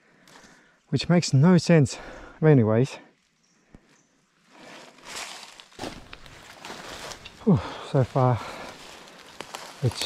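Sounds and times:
footsteps through undergrowth: 0:03.2 - 0:10.0
twigs snapping: 0:05.0 - 0:10.0.

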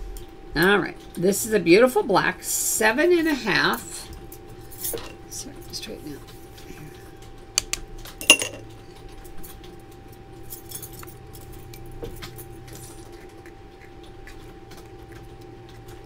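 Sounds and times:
faint steady hum: 0:00.0 - 0:16.0
small metal items clinking: 0:08.2 - 0:08.6.

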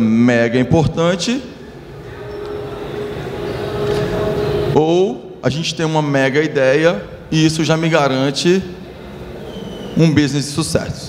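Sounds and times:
faint steady hum: 0:00.4 - 0:11.0.

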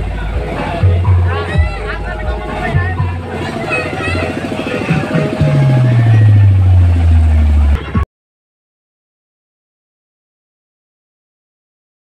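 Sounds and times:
deep bass note from speakers: 0:00.0 - 0:03.4, 0:05.1 - 0:08.0.

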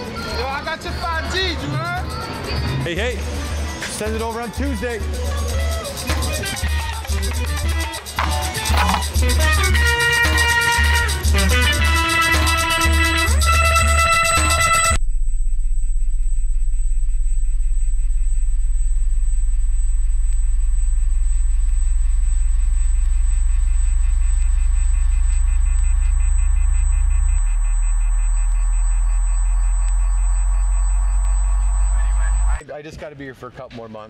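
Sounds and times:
low electronic drone: 0:02.9 - 0:32.6
faint high whine: 0:12.6 - 0:32.6.

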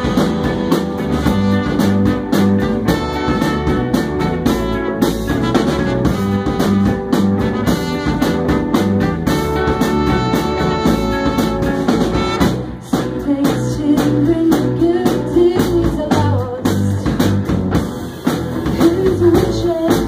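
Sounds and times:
trumpet lead: 0:00.0 - 0:13.0.

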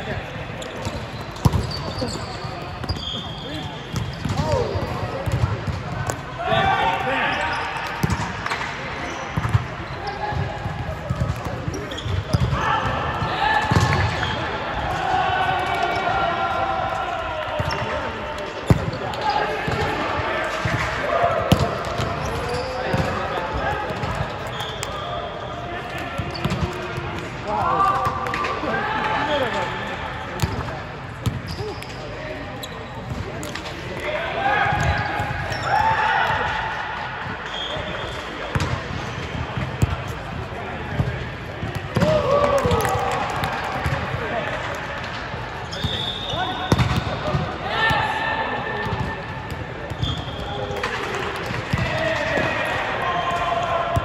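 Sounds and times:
players shouting and chatter: 0:00.0 - 0:54.0
volleyball slaps and thuds: 0:46.7 - 0:47.4.

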